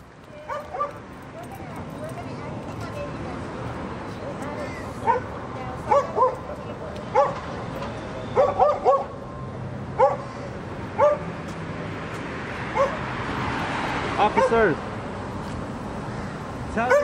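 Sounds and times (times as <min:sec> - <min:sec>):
dog yipping: 0:00.5 - 0:01.0, 0:05.0 - 0:05.3, 0:05.9 - 0:06.4, 0:08.3 - 0:09.2, 0:10.0 - 0:10.3, 0:11.0 - 0:11.2, 0:12.8 - 0:13.0.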